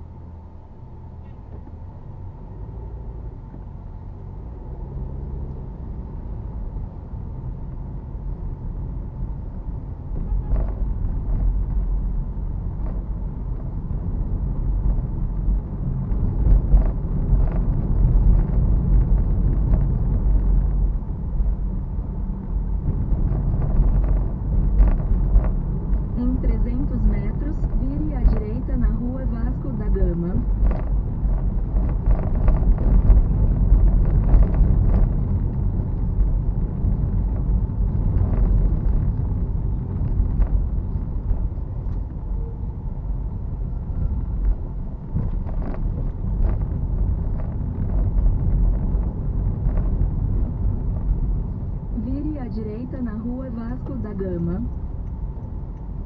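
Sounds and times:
car engine and tyre rumble: 0.0 - 56.0.

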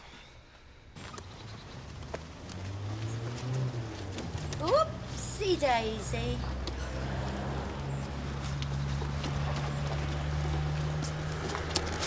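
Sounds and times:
boot footsteps on cobbles: 1.0 - 5.0, 6.5 - 12.0.

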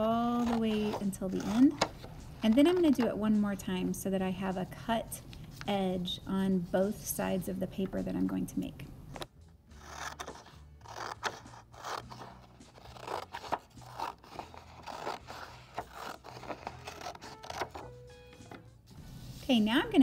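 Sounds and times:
scissors cutting paper: 0.2 - 3.2, 9.2 - 18.0.

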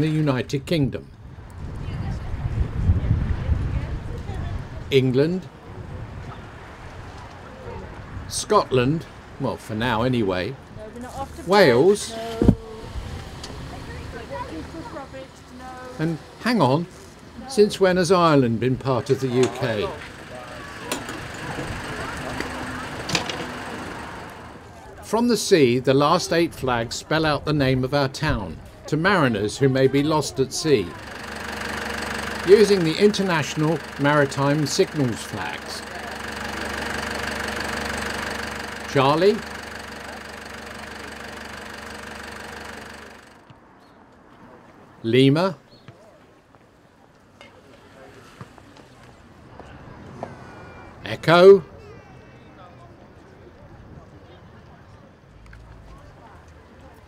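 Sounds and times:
road traffic: 0.0 - 57.0
faint voices: 1.8 - 43.5, 45.8 - 57.0.

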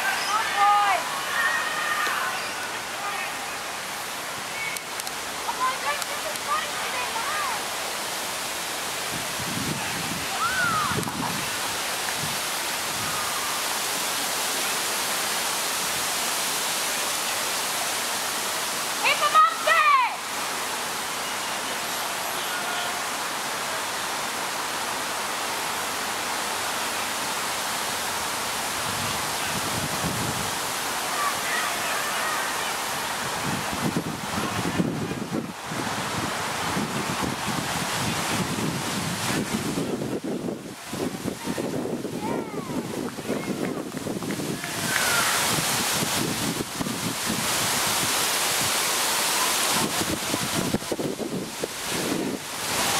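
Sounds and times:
distant shouts: 0.0 - 3.7, 10.3 - 11.0, 21.6 - 23.2, 31.0 - 32.9, 44.5 - 45.5
wind noise on microphone: 8.8 - 13.6, 28.6 - 30.8, 33.1 - 52.9.

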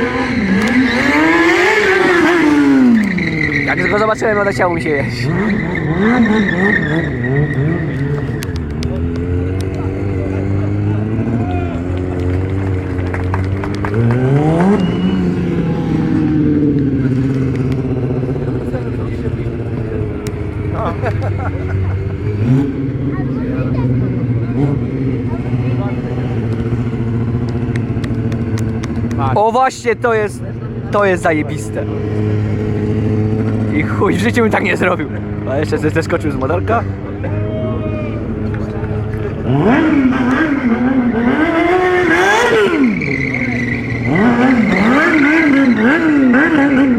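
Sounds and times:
motorcycle engine revving hard: 0.0 - 29.4, 30.1 - 37.2, 38.0 - 46.9.

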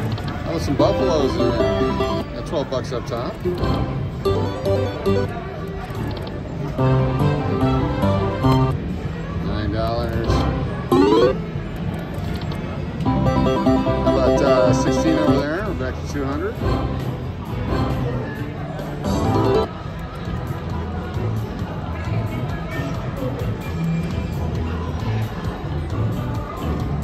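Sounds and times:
casino background noise: 0.0 - 27.0
slot machine electronic music and chimes: 0.8 - 2.3, 3.6 - 5.3, 6.8 - 8.8, 10.3 - 11.4, 13.1 - 15.6, 19.1 - 19.7.

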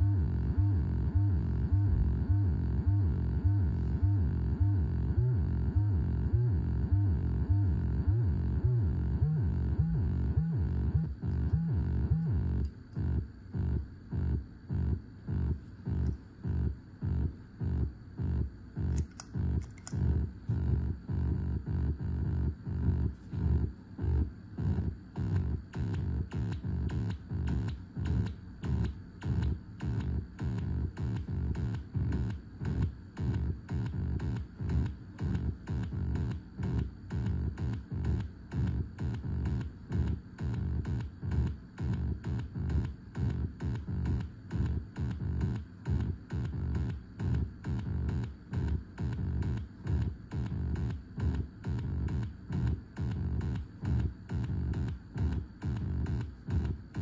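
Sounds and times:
pulsing electronic drone: 0.0 - 19.9, 20.6 - 57.0.

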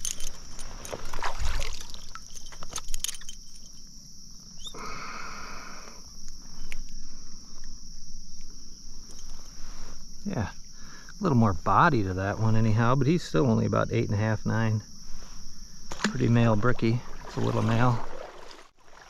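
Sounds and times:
handling clicks and rustles: 0.0 - 4.0, 9.0 - 9.6
insects chirring: 0.0 - 19.0.

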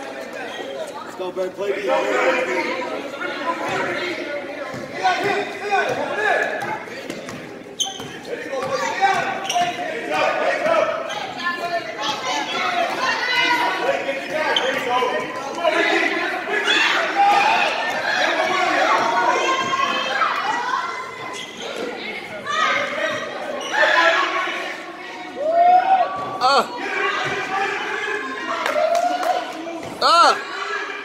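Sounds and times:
spectators and children talking: 0.0 - 28.6.

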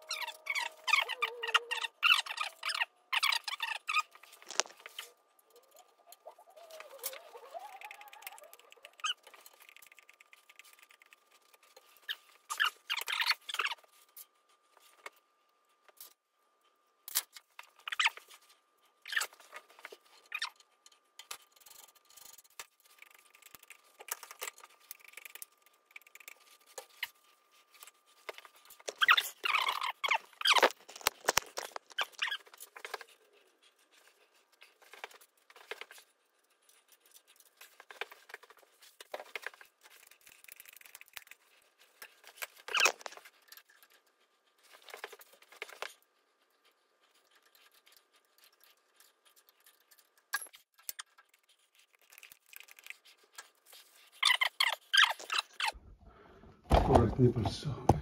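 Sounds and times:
grease gun squeaks and clicks: 0.0 - 13.9, 17.6 - 18.3, 20.2 - 36.1, 36.7 - 46.0, 46.6 - 55.8.

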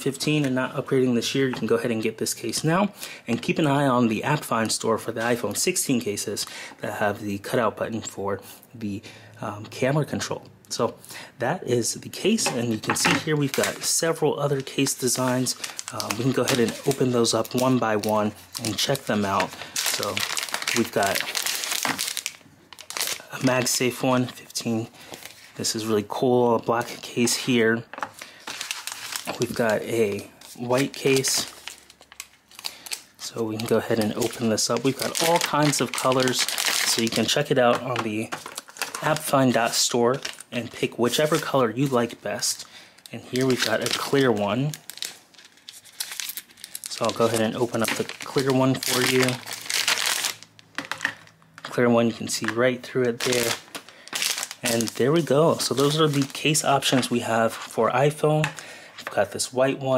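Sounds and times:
plastic pouch crinkling: 12.3 - 57.8.

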